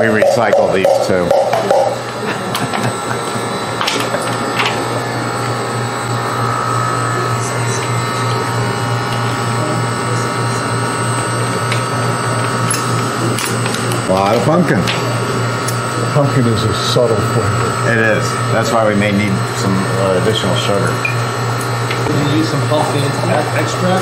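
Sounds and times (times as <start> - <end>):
freezer machine hum and whine: 0.0 - 24.0.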